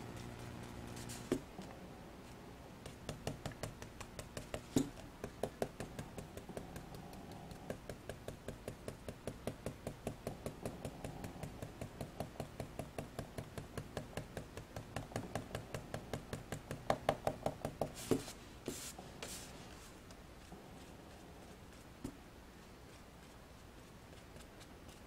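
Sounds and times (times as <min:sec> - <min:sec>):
ink dauber tapping on card: 0:02.8 - 0:18.2.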